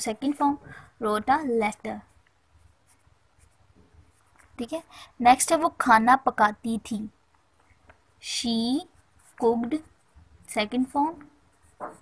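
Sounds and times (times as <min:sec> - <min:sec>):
pen scratching on paper: 0:01.2 - 0:05.0, 0:08.4 - 0:12.0.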